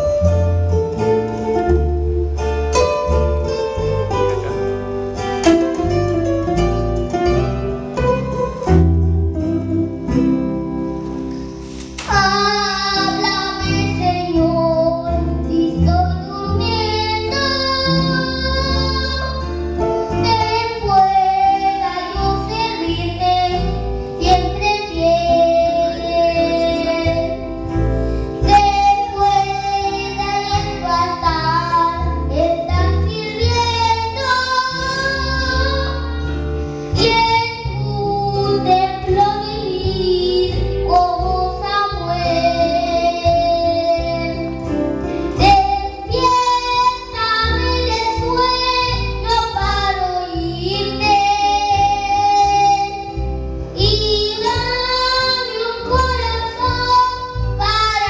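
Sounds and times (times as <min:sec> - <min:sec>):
backing music with bass line: 0:00.0 - 0:58.0
boy singing into microphone: 0:11.9 - 0:27.6, 0:28.4 - 0:58.0.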